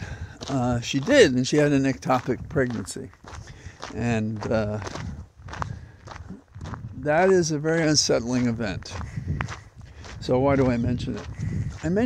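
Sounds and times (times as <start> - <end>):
footsteps outdoors: 0.0 - 12.0.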